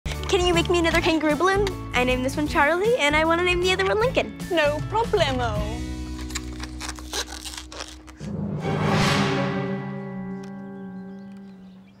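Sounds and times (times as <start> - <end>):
low music bed: 0.1 - 12.0
rubbery balloon squeaks: 6.2 - 8.3.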